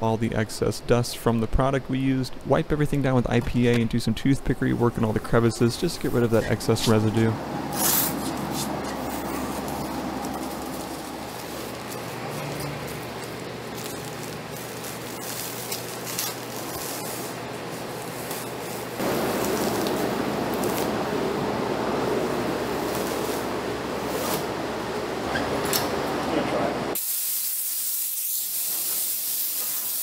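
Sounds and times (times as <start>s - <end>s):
compressed air hissing: 7.6s - 21.2s, 27.0s - 30.0s
masking tape peeling: 7.7s - 21.0s, 22.8s - 24.5s.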